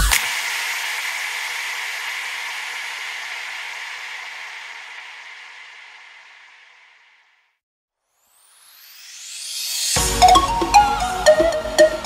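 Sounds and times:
hissing white noise: 0:00.0 - 0:07.4.

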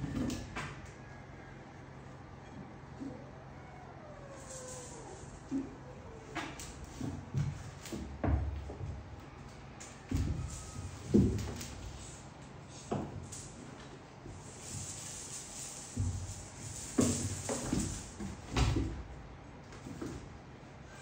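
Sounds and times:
kittens scrambling on tiled floor: 0:03.0 - 0:09.0, 0:09.8 - 0:20.3.

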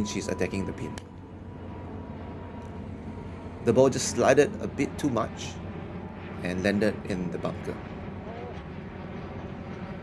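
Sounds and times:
faint wavering tone: 0:00.0 - 0:01.6
low outdoor rumble: 0:00.0 - 0:10.0.

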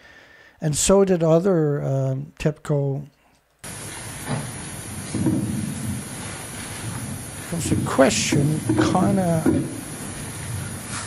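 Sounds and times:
muffled low room noise: 0:00.0 - 0:11.0
recording hiss: 0:00.0 - 0:11.0.

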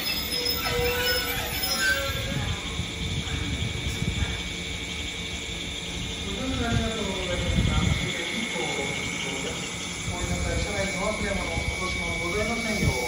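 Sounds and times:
wheel or brake squeals: 0:00.0 - 0:02.8
electric train braking: 0:00.0 - 0:13.0.

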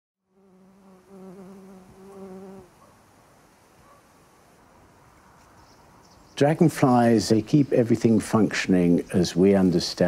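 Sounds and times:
bee buzzing in flight: 0:00.3 - 0:02.8.

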